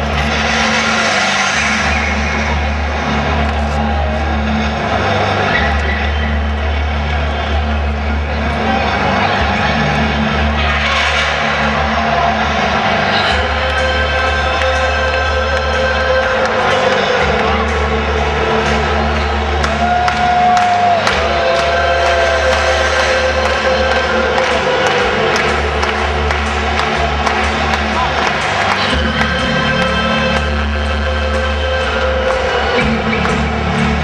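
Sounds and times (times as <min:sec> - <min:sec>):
bass line: 0:00.0 - 0:34.0
crowd noise: 0:00.0 - 0:34.0
loud low drone: 0:00.0 - 0:34.0.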